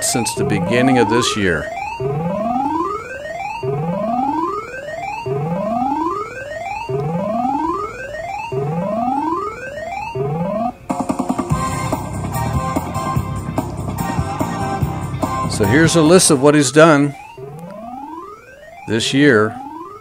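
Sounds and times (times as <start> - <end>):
jackpot alert: 0.0 - 10.9, 15.4 - 20.0
rising electronic tally tone: 0.0 - 20.0.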